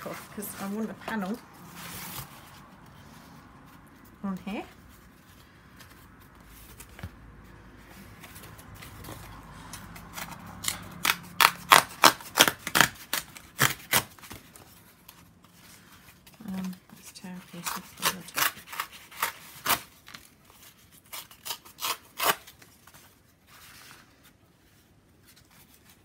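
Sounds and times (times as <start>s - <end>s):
cardboard tearing: 10.0s - 14.8s, 17.4s - 24.2s.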